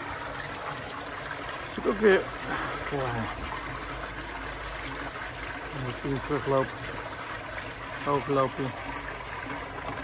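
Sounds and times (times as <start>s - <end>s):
water pouring from pipe splashing: 0.0s - 10.0s.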